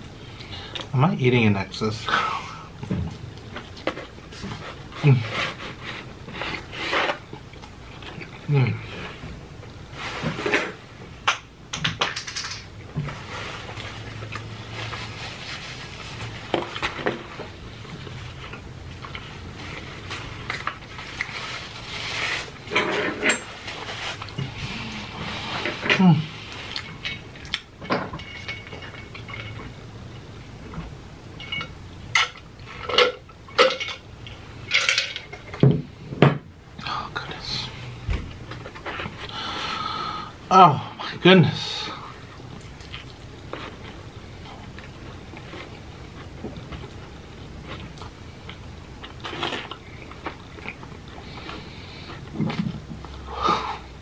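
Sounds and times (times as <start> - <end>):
man chewing pizza: 13.2 - 22.7, 41.9 - 54.0.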